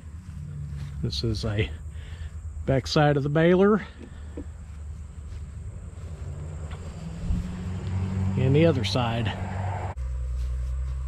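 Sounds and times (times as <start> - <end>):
wind rumble on microphone: 6.9 - 8.0.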